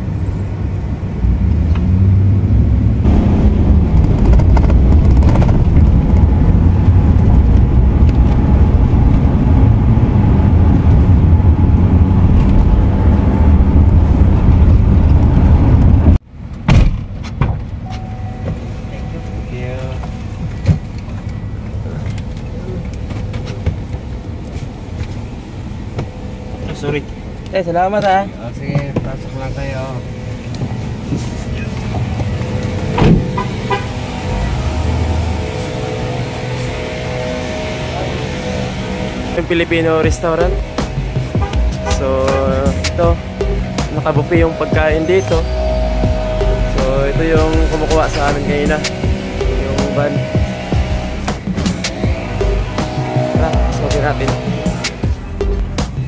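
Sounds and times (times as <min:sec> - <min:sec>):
road and engine noise in van cabin: 0:00.0 - 0:56.0.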